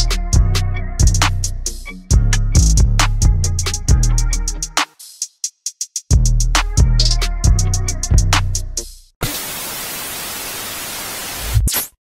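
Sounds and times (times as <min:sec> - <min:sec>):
television static hiss: 0:09.2 - 0:11.8.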